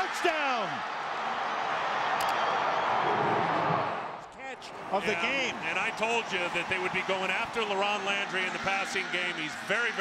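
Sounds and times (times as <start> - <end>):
stadium crowd din: 0.0 - 10.0.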